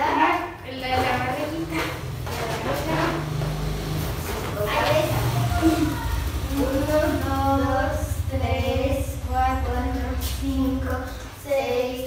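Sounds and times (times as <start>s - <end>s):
indistinct voices: 0.0s - 12.0s
steady low hum: 0.0s - 12.0s.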